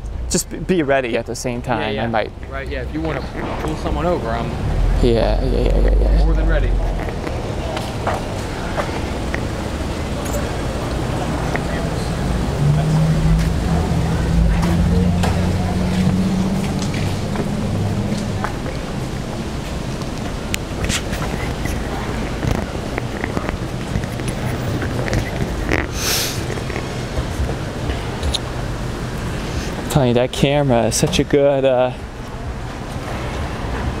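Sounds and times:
vehicle engine drone: 0:00.0 - 0:34.0
short hiss: 0:25.9 - 0:26.5.

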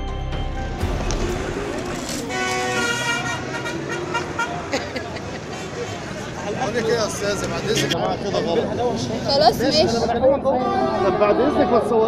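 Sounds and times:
street traffic: 0:00.0 - 0:12.0
car horn: 0:01.4 - 0:04.7
people talking: 0:04.7 - 0:12.0.

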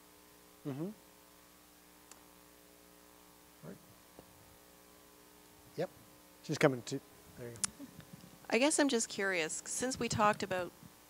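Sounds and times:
faint mains hum: 0:00.0 - 0:11.0
short vocal sound: 0:00.6 - 0:01.0.

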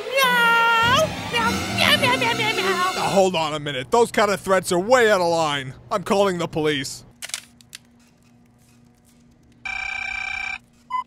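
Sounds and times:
telephone ringing: 0:09.6 - 0:11.0.

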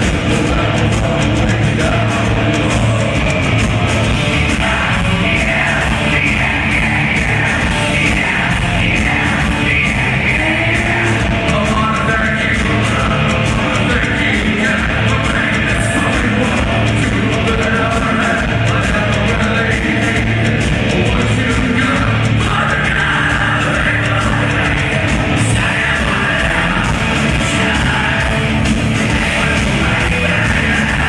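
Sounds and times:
live metal band playing: 0:00.0 - 0:31.0.

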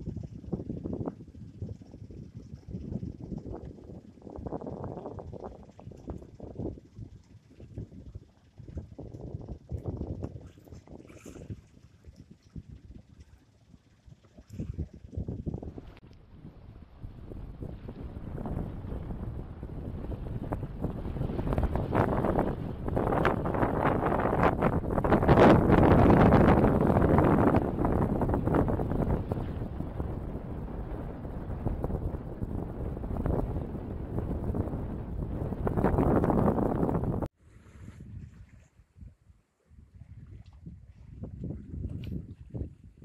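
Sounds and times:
wind buffeting microphone: 0:00.0 - 0:43.0
water rushing past boat: 0:02.3 - 0:39.1.

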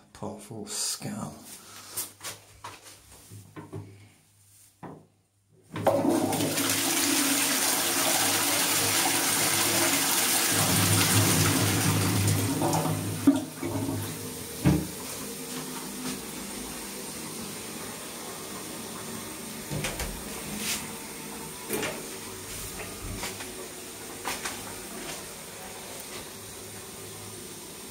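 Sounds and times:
toilet cistern flushing: 0:05.7 - 0:27.9.

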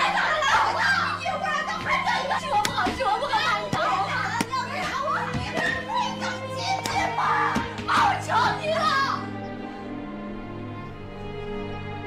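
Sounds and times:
voices shouting over one another: 0:00.0 - 0:09.3
woman pleading: 0:00.0 - 0:09.3.

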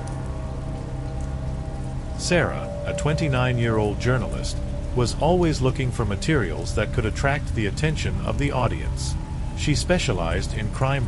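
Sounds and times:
faint ticks: 0:00.0 - 0:02.0
low sustained drone: 0:00.0 - 0:11.0
rain-like hiss: 0:00.0 - 0:11.0.

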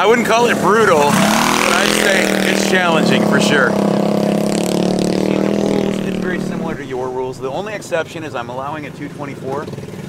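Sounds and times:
small engine running: 0:00.5 - 0:07.9.

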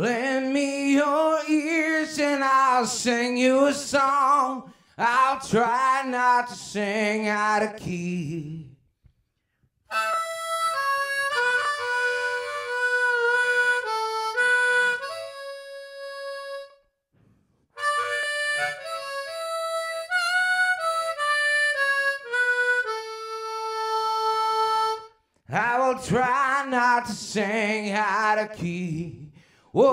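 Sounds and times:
harmonica melody: 0:09.9 - 0:26.0.

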